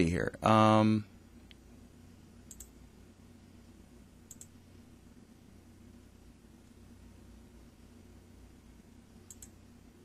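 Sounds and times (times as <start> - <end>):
low steady hum: 0.0 - 10.0
computer mouse double clicks: 2.5 - 2.7, 4.3 - 4.5, 9.3 - 9.6.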